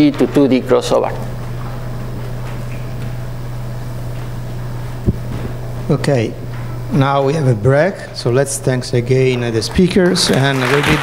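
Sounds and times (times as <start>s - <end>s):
low room hum: 0.0s - 11.0s
low thump: 5.1s - 5.6s.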